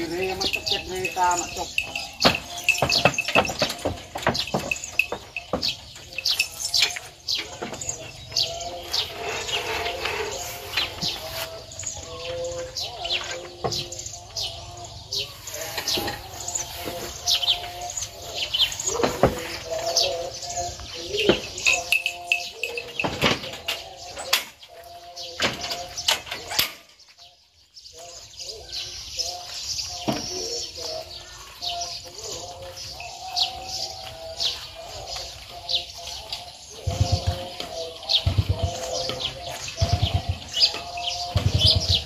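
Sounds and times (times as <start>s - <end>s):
small birds chirping: 0.0s - 42.0s
knocks and clatters: 1.9s - 6.1s.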